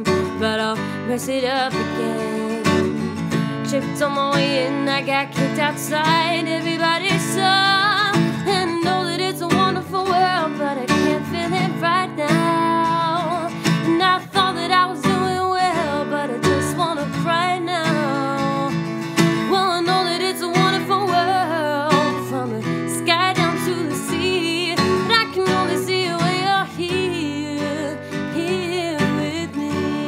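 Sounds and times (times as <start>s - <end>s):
strummed acoustic guitar: 0.0s - 30.0s
woman singing a pop ballad: 0.0s - 30.0s.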